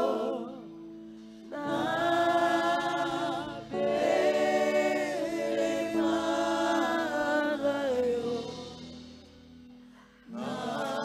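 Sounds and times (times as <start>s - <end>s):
gospel choir singing: 0.0s - 9.1s, 10.2s - 11.0s.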